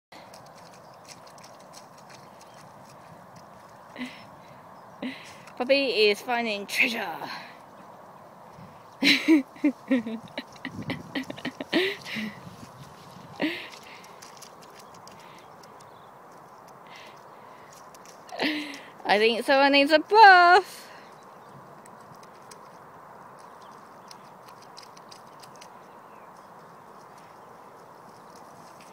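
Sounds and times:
small clicks and rustles: 0:00.2 - 0:04.3, 0:05.1 - 0:05.8, 0:09.6 - 0:19.1, 0:21.0 - 0:28.9
steady low hiss: 0:02.9 - 0:24.5.

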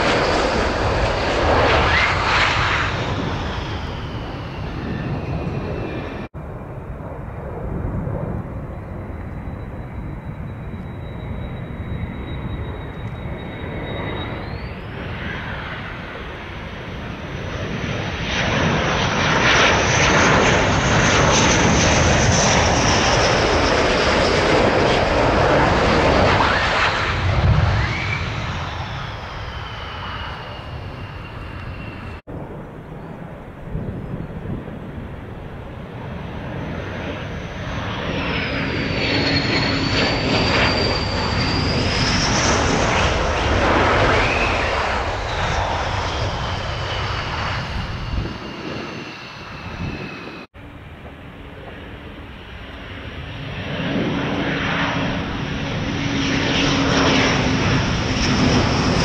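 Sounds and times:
jet aircraft passing with whine: 0:00.0 - 0:59.0.

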